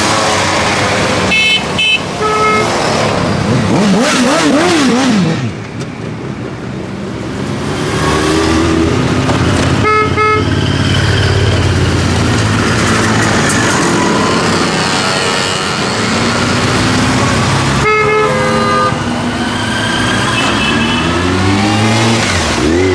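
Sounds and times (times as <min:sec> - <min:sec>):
horn honks: 0:01.3 - 0:02.7, 0:09.8 - 0:10.6, 0:17.8 - 0:19.1, 0:20.1 - 0:21.4
motorcycles revving past: 0:02.6 - 0:05.6, 0:07.6 - 0:09.8, 0:10.9 - 0:17.8, 0:19.0 - 0:22.9.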